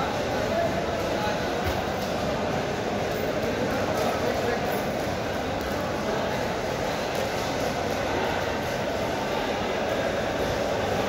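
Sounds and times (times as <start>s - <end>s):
indoor market hall din: 0.0s - 11.0s.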